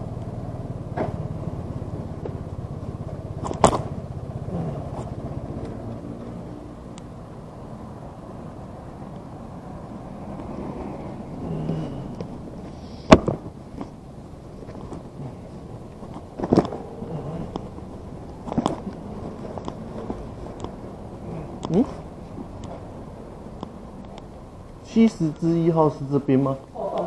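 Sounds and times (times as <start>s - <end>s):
engine running: 0.0s - 25.8s.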